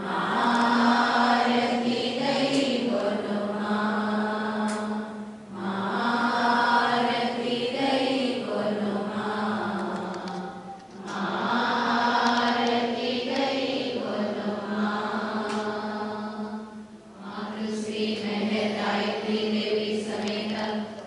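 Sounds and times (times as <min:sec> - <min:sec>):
devotional chanting: 0:00.0 - 0:21.0.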